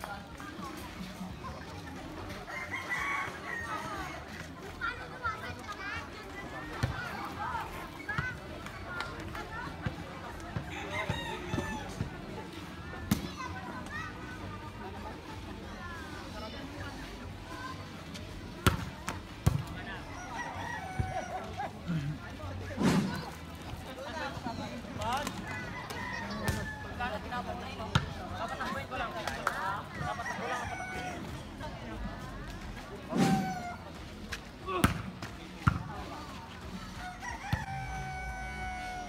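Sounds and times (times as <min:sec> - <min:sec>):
volleyball slaps: 0:34.8 - 0:35.9.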